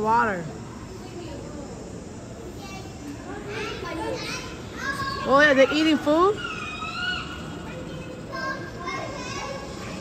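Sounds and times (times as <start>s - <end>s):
chatter of children and adults: 0.0s - 10.0s.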